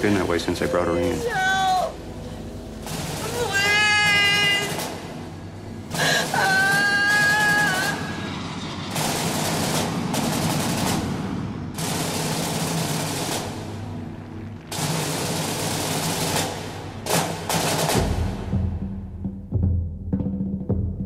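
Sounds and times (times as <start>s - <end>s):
low sustained drone: 0.0s - 17.1s
crackling rush of noise: 1.2s - 18.0s
high wailing voice: 3.2s - 4.8s, 6.0s - 8.5s.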